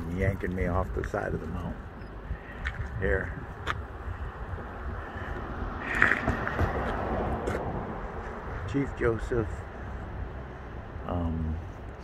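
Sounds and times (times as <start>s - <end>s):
wind rumbling on microphone: 0.0s - 9.0s
rush of noise: 2.3s - 8.7s.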